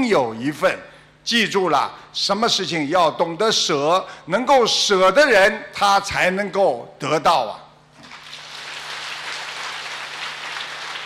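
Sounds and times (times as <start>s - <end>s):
audience applauding: 8.0s - 11.0s.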